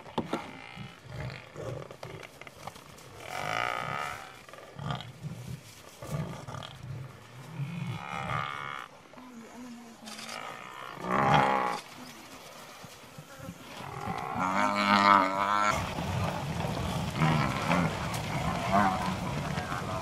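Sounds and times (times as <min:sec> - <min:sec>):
lion growls: 0:03.2 - 0:11.8, 0:13.6 - 0:20.0
buffalo bellowing and lowing: 0:10.1 - 0:11.8, 0:13.3 - 0:20.0.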